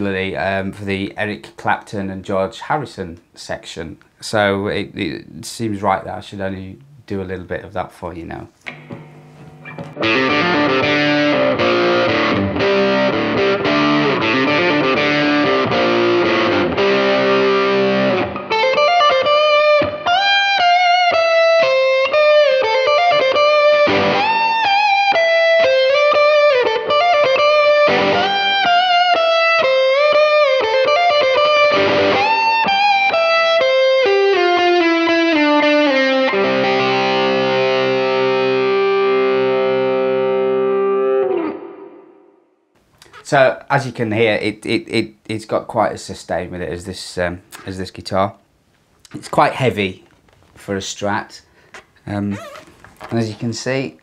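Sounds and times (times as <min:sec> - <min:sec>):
overdriven electric guitar: 0:08.6 - 0:42.5.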